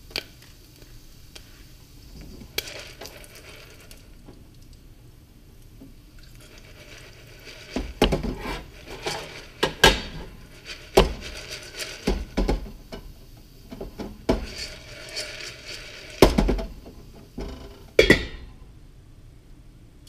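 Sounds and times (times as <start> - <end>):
popcorn kernels rattling: 0.0 - 4.9, 6.1 - 18.5
pot scraping on coil burner: 0.2 - 4.3, 6.2 - 18.5.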